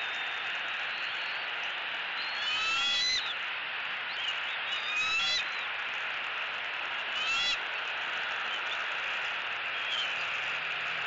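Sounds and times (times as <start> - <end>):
eaglets high chirping: 2.4 - 3.3, 4.7 - 5.4.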